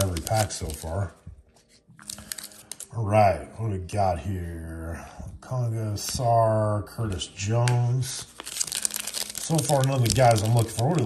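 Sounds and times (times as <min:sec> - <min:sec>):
plastic and foil packaging crinkling: 0:00.0 - 0:01.1, 0:02.0 - 0:02.9, 0:08.2 - 0:11.0.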